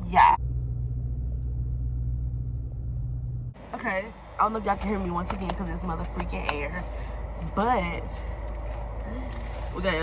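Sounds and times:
car engine rumble inside cabin: 0.0s - 10.0s.

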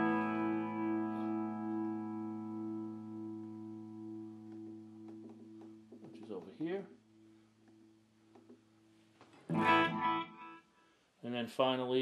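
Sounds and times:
electric guitar chord ringing: 0.0s - 5.8s, 9.5s - 10.6s.

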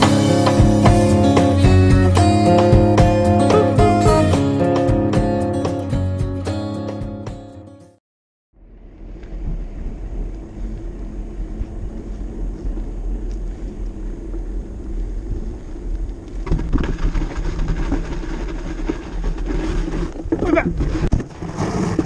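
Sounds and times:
bike tyres on asphalt: 8.6s - 22.0s
wind rumble on microphone: 8.7s - 22.0s.

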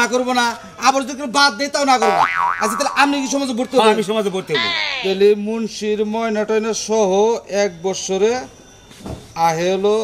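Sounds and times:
man talking: 0.0s - 5.6s
cartoon boing sound effect: 2.0s - 3.4s.

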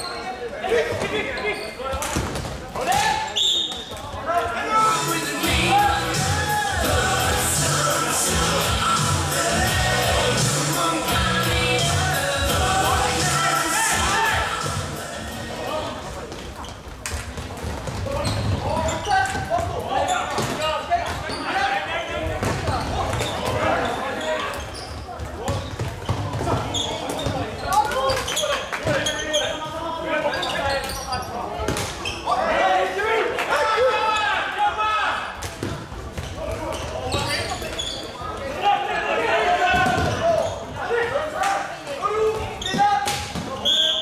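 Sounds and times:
players shouting: 4.3s - 16.0s.

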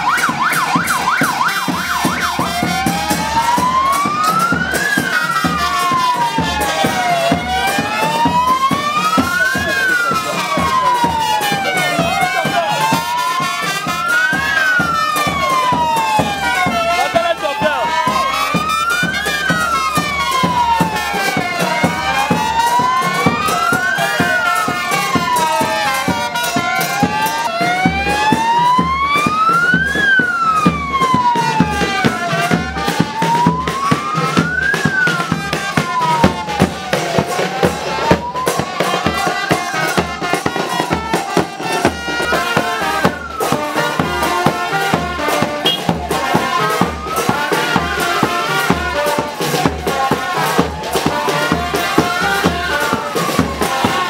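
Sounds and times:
crowd noise: 0.0s - 54.0s
music: 0.0s - 54.0s
wailing siren: 0.0s - 54.0s.

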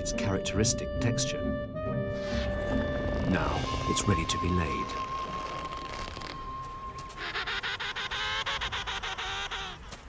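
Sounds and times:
soft background music: 0.0s - 7.2s
penguins honking: 4.7s - 10.0s.

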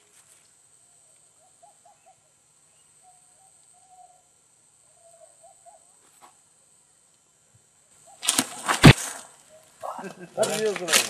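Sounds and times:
faint bird calls: 0.0s - 6.4s, 7.8s - 10.2s
steady high hiss: 0.0s - 11.0s.

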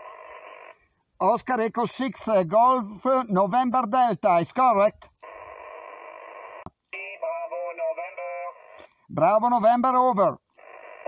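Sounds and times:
radio static hiss: 5.2s - 9.5s
voice over radio: 7.0s - 10.4s.

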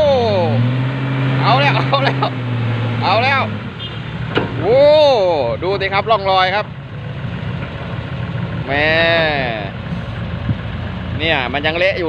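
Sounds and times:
diesel engines idling: 0.0s - 12.0s
short knock: 4.3s - 4.6s
man exclaiming: 4.6s - 5.6s.

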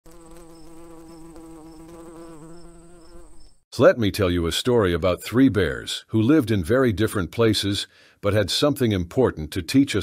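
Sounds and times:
cartoon bee buzzing: 0.0s - 3.6s.

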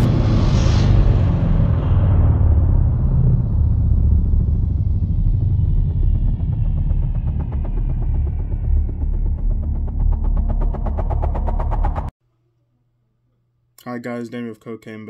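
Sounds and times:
deep cinematic boom: 0.0s - 12.1s.

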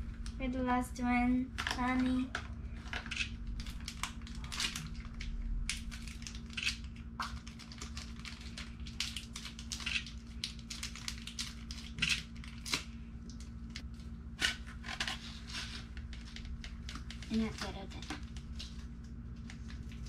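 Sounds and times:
faint steady hum: 0.0s - 20.0s
plastic wrapper crinkling: 1.5s - 20.0s.

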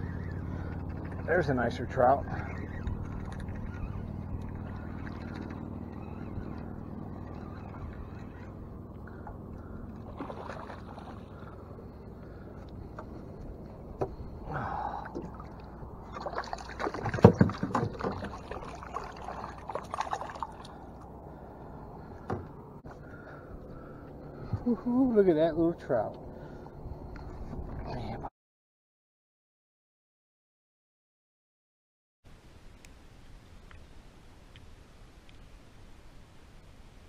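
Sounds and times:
water splashing against boat: 0.0s - 22.7s
low steady hum: 0.0s - 28.3s.

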